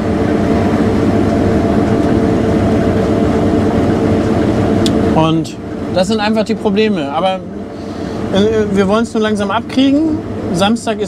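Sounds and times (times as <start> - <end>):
combine harvester engine drone: 0.0 - 11.0.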